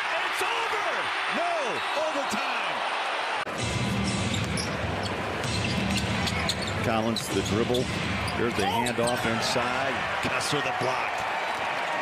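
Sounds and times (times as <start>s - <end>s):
arena crowd cheering: 0.0s - 3.6s, 8.0s - 12.0s.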